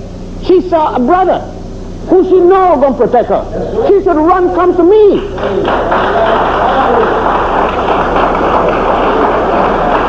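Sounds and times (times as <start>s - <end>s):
audience applauding: 5.2s - 10.0s.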